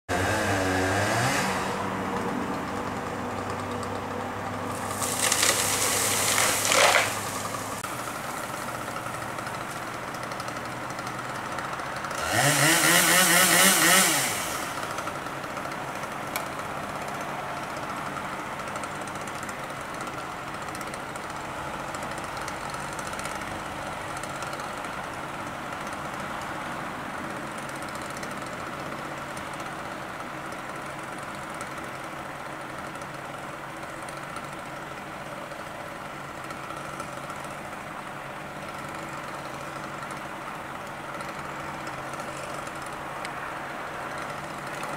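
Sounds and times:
chainsaw cutting wood: 0.1 - 44.9
chainsaw idling and revving: 0.1 - 44.9.

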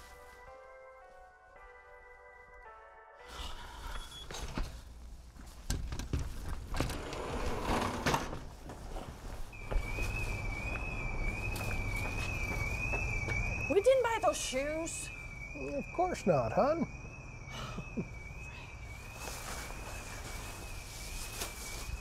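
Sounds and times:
anti-theft alarm beep: 3.9 - 4.4, 9.6 - 22.0
footsteps: 8.3 - 14.3.

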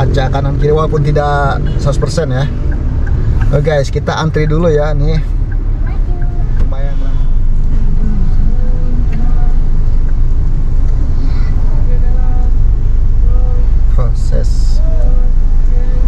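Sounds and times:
car idling from inside cabin: 0.0 - 16.0.

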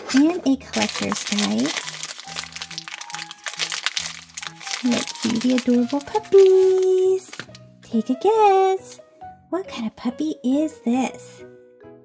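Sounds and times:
wrapping crinkling: 0.1 - 7.6.

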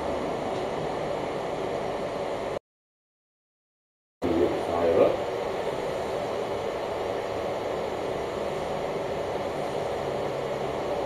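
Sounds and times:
steady background noise: 4.2 - 11.0.

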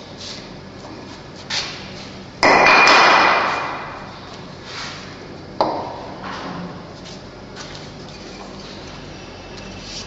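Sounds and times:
high ringing tone: 8.3 - 10.0.

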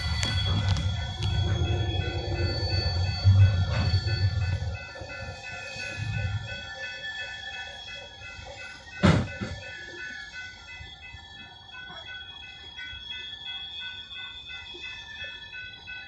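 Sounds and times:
crossing bell ringing: 0.0 - 16.0
diesel locomotive engine rumble: 0.0 - 16.0.

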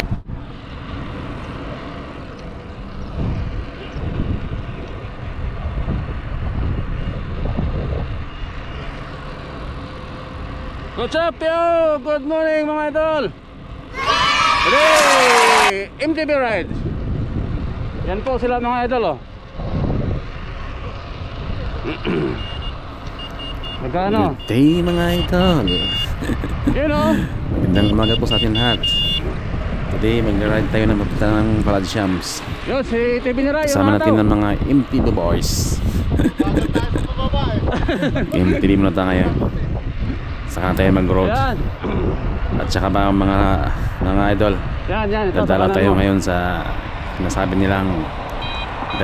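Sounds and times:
wind buffeting microphone: 2.5 - 8.7, 16.1 - 21.8, 25.2 - 49.0
short high beeps: 22.3 - 26.2, 27.7 - 29.3, 48.4 - 49.0.

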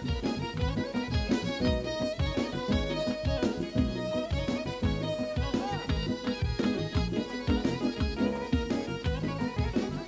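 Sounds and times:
electric keyboards: 0.0 - 10.0
fiddle: 0.0 - 10.0
folk dance music: 0.0 - 10.0
long-necked lute: 0.0 - 10.0.

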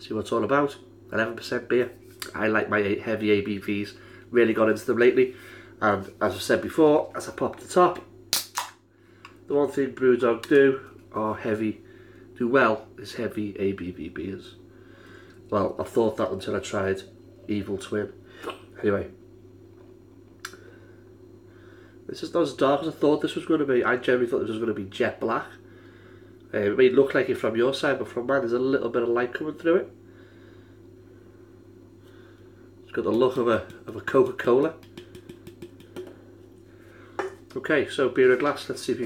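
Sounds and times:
steady low hum: 0.0 - 39.0.

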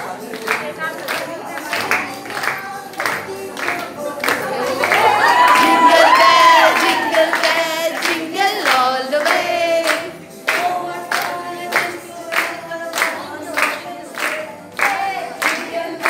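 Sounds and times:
group singing: 0.0 - 16.0
hand-clapping in time: 0.0 - 16.0.

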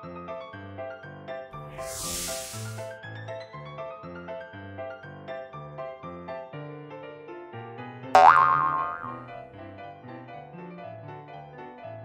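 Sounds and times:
cartoon boing: 8.2 - 9.3.

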